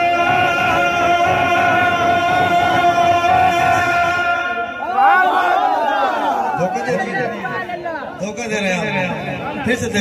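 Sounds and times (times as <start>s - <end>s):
man speaking through loudspeakers: 6.4s - 10.0s.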